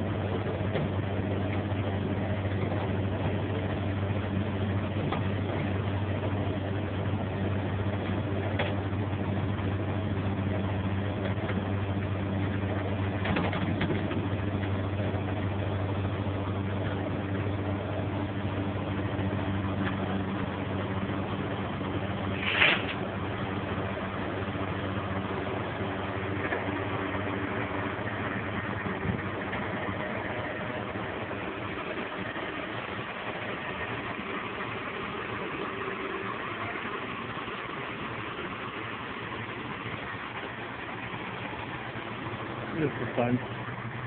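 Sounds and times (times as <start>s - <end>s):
truck engine idling: 0.0s - 44.0s
winch pulling: 21.7s - 34.3s.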